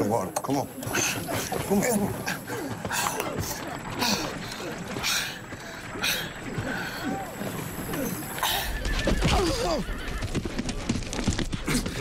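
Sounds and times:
hooves clattering: 0.0s - 12.0s.

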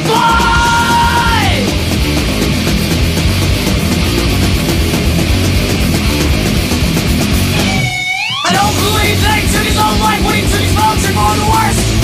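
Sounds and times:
high yelled vocal note: 0.0s - 1.8s
thrash metal song: 0.0s - 12.0s.

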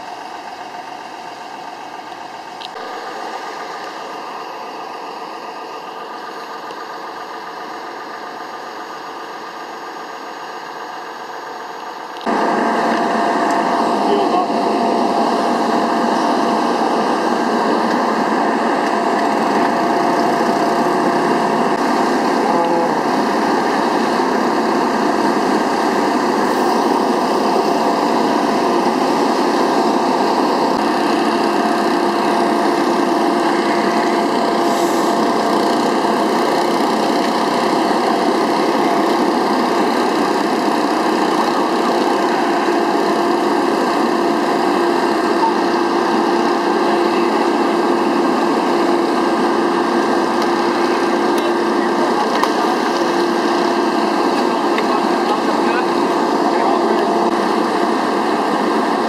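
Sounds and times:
small engine running steadily: 0.0s - 59.0s.

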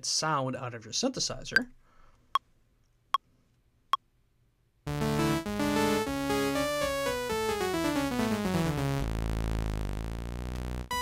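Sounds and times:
synthesizer playing chords: 4.9s - 11.0s.

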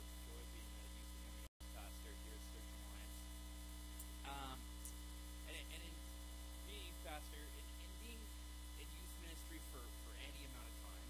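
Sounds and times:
low electrical mains hum: 0.0s - 11.0s
faint voice: 1.8s - 3.1s, 4.3s - 4.6s, 5.5s - 6.0s, 6.7s - 11.0s.

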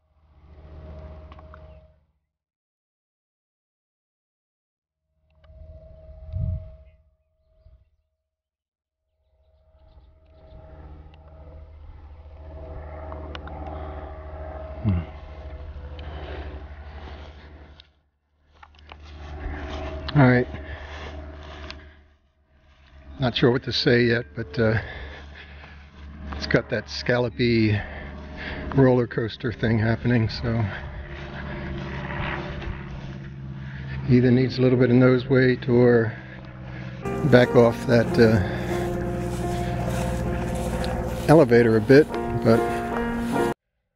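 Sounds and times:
steady low hum: 0.0s - 2.0s, 9.4s - 17.8s, 18.6s - 43.6s
engine droning: 0.0s - 2.1s, 9.4s - 43.6s
wind rumbling on microphone: 5.5s - 7.0s
person saying hmm: 14.8s - 15.1s
grass swishing: 37.1s - 43.6s
light footfalls: 37.7s - 43.5s.

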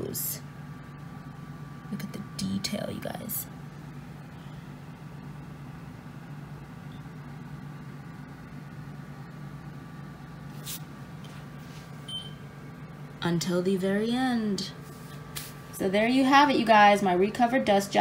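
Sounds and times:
low room hum: 0.0s - 18.0s
faint high beep: 12.1s - 12.4s.

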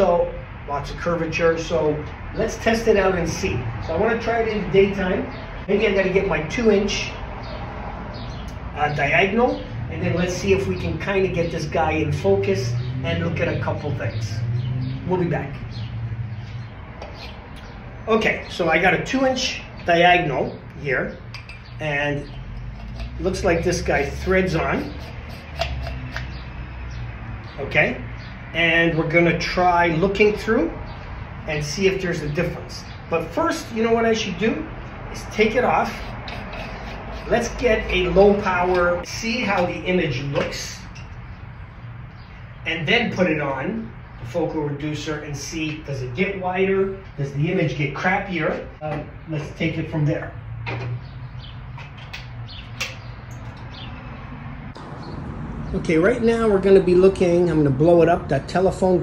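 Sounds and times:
metal clicks and scrapes: 21.3s - 23.4s, 24.8s - 26.4s, 35.9s - 37.6s.

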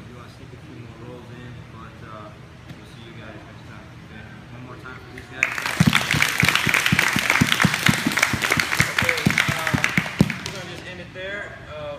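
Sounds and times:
people clapping: 5.4s - 10.9s.

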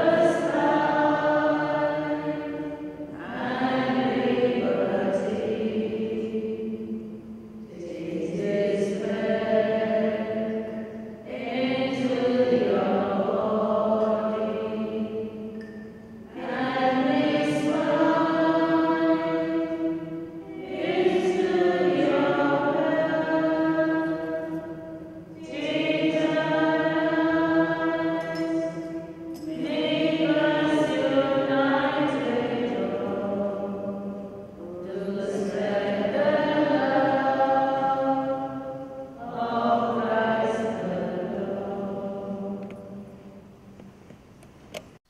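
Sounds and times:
hymn singing: 0.0s - 43.9s.

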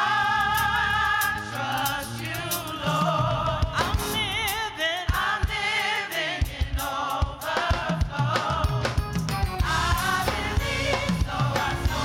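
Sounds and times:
choir singing with vibrato: 0.0s - 9.0s, 9.6s - 12.0s
band with drum beat: 0.0s - 12.0s.

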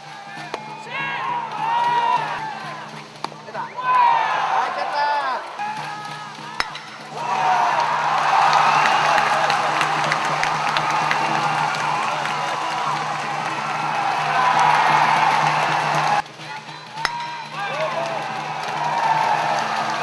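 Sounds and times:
cheering-section music: 0.0s - 20.0s
crowd cheering and shouting: 0.0s - 20.0s.

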